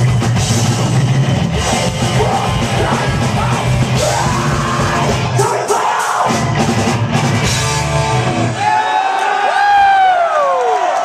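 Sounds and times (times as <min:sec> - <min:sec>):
metal band playing live: 0:00.0 - 0:08.9
person screaming vocals: 0:02.2 - 0:06.3.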